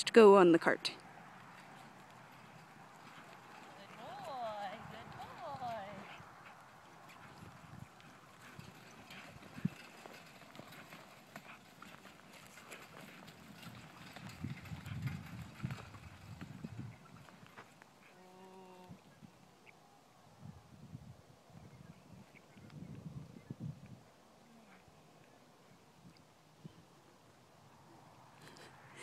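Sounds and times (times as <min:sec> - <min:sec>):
hooves clopping on dry ground: 0:01.0 - 0:19.5.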